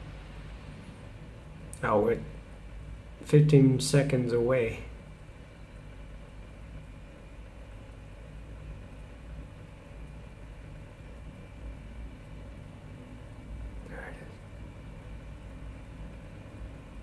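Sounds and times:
faint hiss: 0.0s - 17.0s
low rumble and hum: 0.0s - 17.0s.

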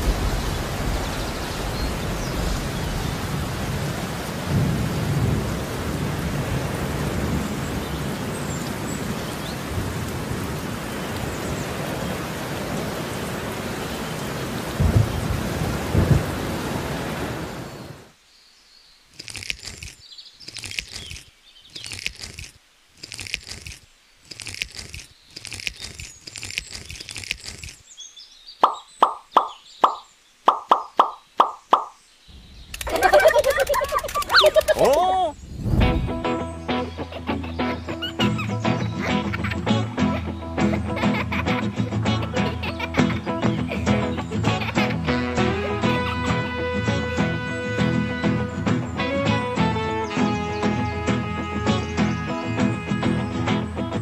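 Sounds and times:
thunder rumbling: 0.0s - 11.6s, 14.6s - 17.7s, 32.3s - 36.5s
rain hissing: 0.0s - 54.0s.

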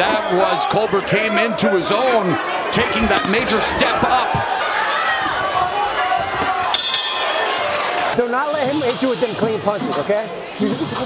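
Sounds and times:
crowd voices: 0.0s - 11.0s
boxing bell ring: 6.7s - 7.6s.

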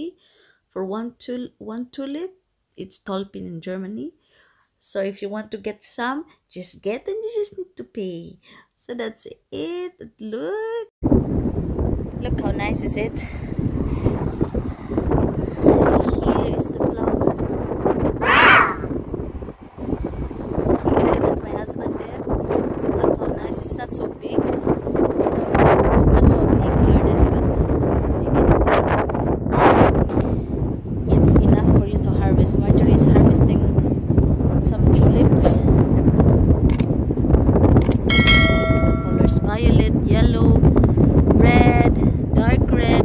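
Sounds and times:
wind rumble on microphone: 11.0s - 43.0s
harsh caw: 18.2s - 18.9s
short clicks: 36.7s - 36.9s
bright bell-like chime: 38.1s - 39.5s.

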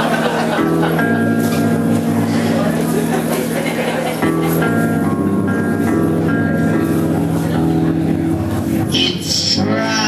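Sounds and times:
electric guitar sustained chord: 0.0s - 10.0s.

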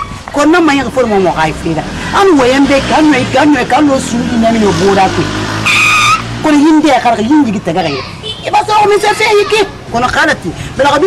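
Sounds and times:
high-pitched squeal: 4.7s - 6.4s.

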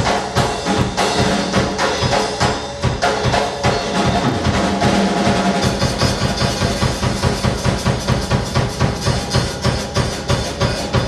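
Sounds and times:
bass drum: 0.0s - 11.0s
cymbals: 0.0s - 11.0s.

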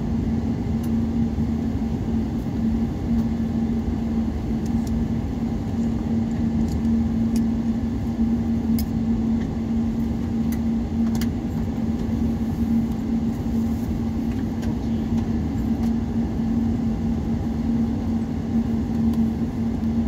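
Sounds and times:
airliner cabin noise: 0.0s - 20.0s.

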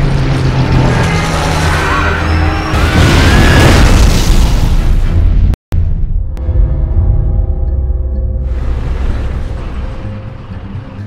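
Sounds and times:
bomb explosion with deep rumble: 2.8s - 6.6s.

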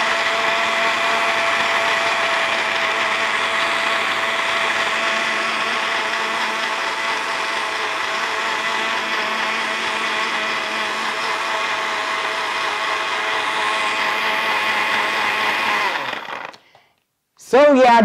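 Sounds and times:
electric blender running: 0.0s - 16.7s.

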